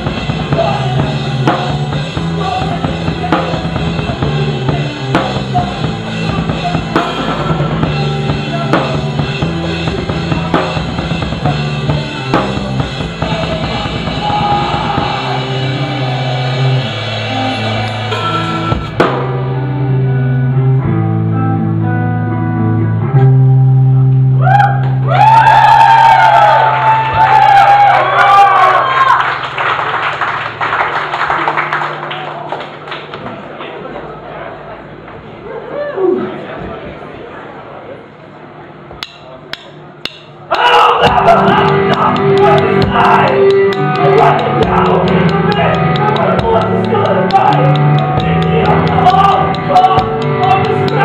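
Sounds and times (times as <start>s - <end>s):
rock band low chords: 0.0s - 28.6s, 39.8s - 51.0s
drum kit hits: 5.1s - 15.7s, 17.8s - 19.6s, 40.0s - 51.0s
high sliding bending tones: 6.0s - 10.6s, 15.4s - 19.9s.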